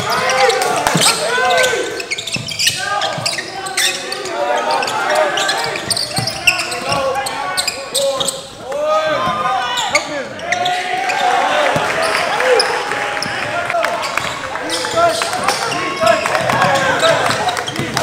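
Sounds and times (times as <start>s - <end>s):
echoing voices: 0.0s - 18.0s
sneakers squeaking: 0.0s - 18.0s.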